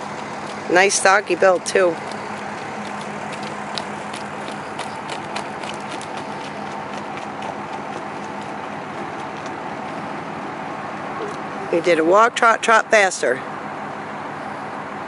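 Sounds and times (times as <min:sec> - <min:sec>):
horse hooves on gravel: 0:00.0 - 0:10.7.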